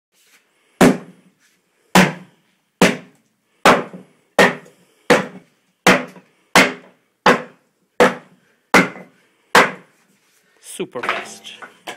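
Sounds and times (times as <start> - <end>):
axe strikes splitting wood: 0.8 - 1.1, 2.0 - 9.9.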